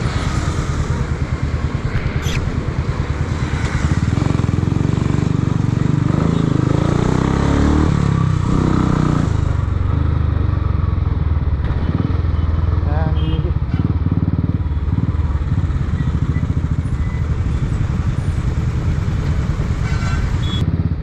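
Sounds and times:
motorcycle engine running: 0.0 - 19.8
traffic: 0.0 - 21.0.

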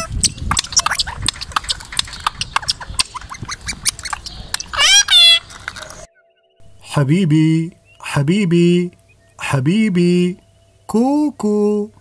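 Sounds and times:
parakeet clicks and chatter: 0.0 - 6.1
parakeet squawk: 0.0 - 6.1.

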